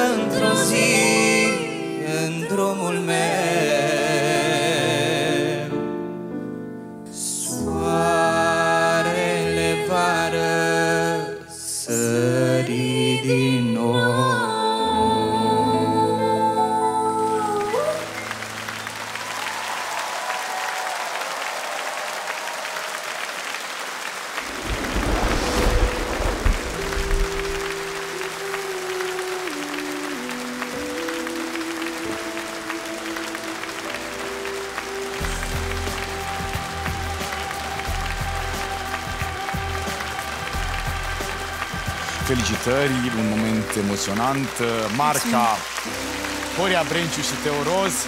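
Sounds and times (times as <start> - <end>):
audience applauding: 17.6 - 48.0.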